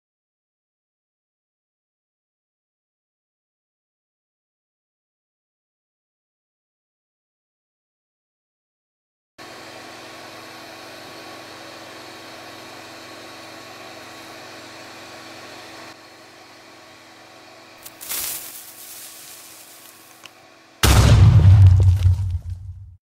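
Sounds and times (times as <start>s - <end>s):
explosion-like boom: 20.8s - 23.0s.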